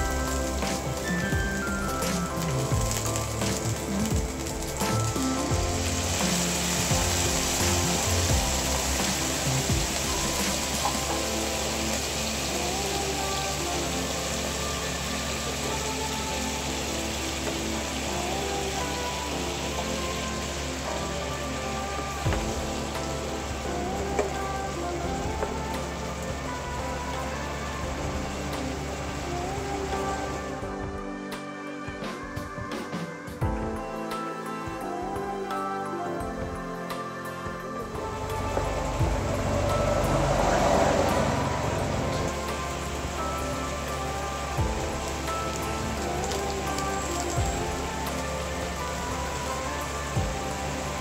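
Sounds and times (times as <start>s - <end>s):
food sizzling in a frying pan: 0.1s - 30.4s.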